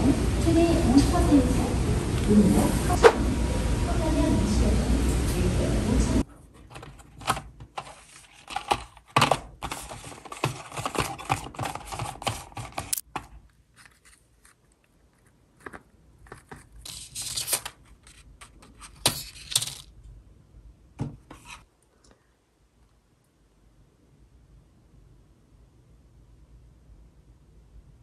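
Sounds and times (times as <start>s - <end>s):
cardboard boxes rustling: 6.6s - 14.6s.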